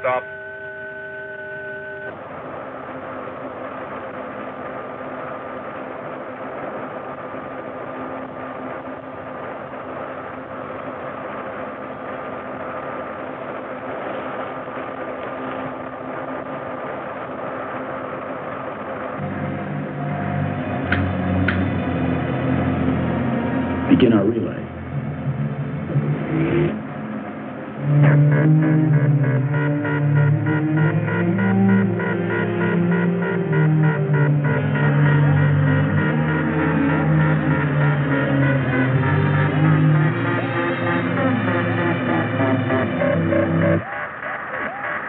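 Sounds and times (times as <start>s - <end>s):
deep layered hum: 0.0s - 45.0s.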